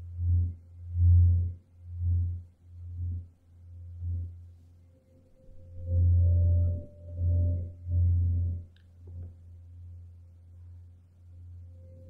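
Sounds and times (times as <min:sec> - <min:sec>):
deep pulsing drone: 0:00.0 - 0:04.4, 0:05.1 - 0:08.7.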